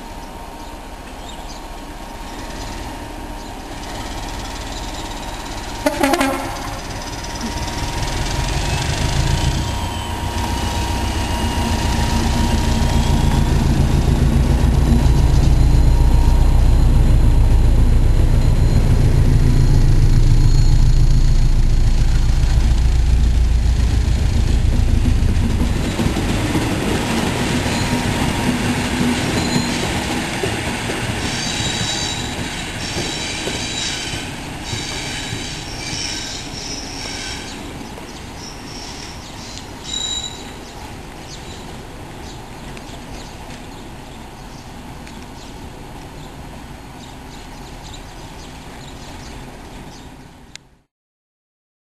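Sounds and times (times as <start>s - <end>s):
locomotive diesel engine rumble: 0.0s - 49.9s
train wheel squeal: 1.2s - 22.3s, 24.8s - 41.6s.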